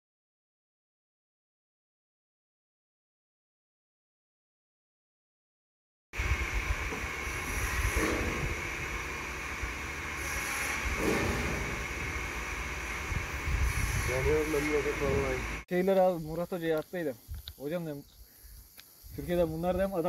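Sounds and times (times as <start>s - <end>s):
wind buffeting microphone: 6.2s - 9.0s, 10.8s - 15.6s.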